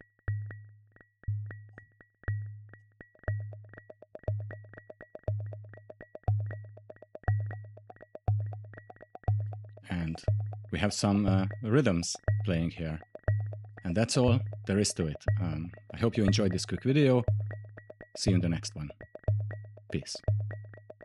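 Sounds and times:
mid-pitched pinged tone: 0:05.3 - 0:21.0
low bass-drum ping: 0:09.3 - 0:20.9.

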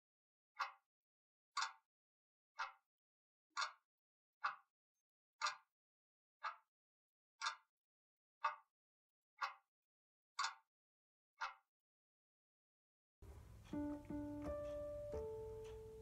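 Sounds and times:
clock ticking: 0:13.2 - 0:16.0.

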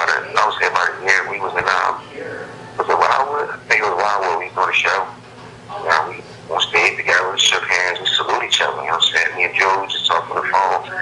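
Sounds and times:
man speaking over telephone: 0:00.0 - 0:05.2, 0:05.8 - 0:11.0.

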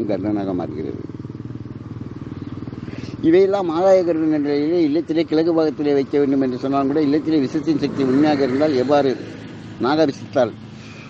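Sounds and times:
small engine running: 0:00.0 - 0:11.0.

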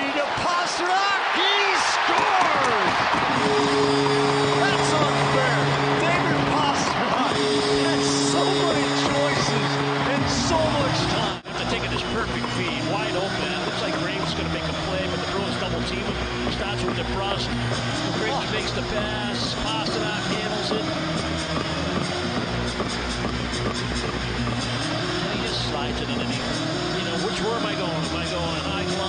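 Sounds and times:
crowd cheering: 0:00.0 - 0:20.9
arena music: 0:00.0 - 0:29.0
goal horn blasts: 0:03.3 - 0:11.1.

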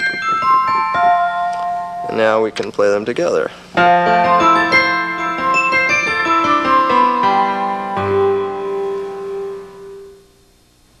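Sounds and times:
synthesizer piano chord: 0:03.8 - 0:10.3.

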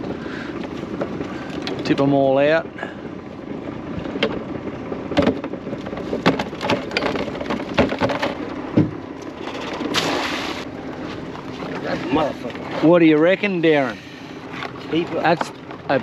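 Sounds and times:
crabs and pot clattering: 0:05.2 - 0:08.4.

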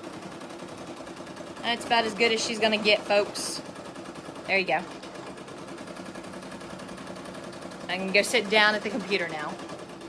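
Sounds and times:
embroidery machine needle rattling: 0:00.0 - 0:10.0.

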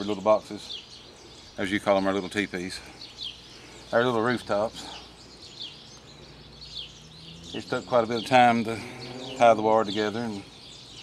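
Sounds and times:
falling bird chirps: 0:00.0 - 0:11.0
outdoor background noise: 0:00.0 - 0:11.0.

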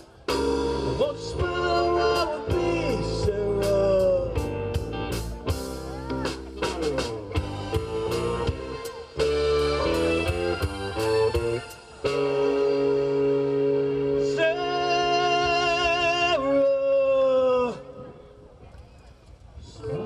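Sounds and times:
electric guitar lead: 0:00.0 - 0:15.9
drums: 0:00.0 - 0:16.4
electric bass: 0:00.0 - 0:16.4.

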